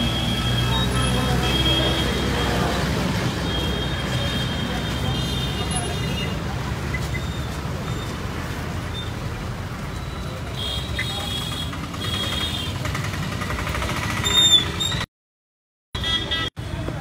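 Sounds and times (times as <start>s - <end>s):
vehicle engine humming: 0.0s - 14.9s
crowd voices: 0.7s - 8.2s.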